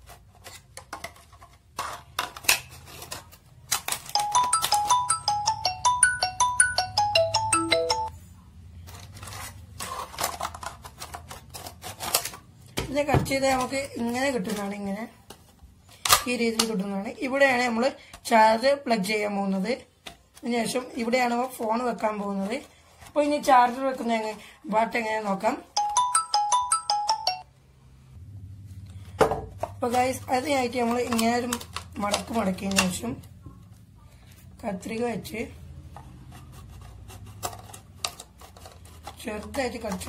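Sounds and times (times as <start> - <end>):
scissors snipping plastic: 0.0 - 4.2, 8.8 - 12.5, 16.0 - 16.8, 29.9 - 33.1, 36.8 - 40.0
bell-like mallet percussion notes: 4.2 - 8.1, 25.8 - 27.4
faint low hum: 27.5 - 37.7.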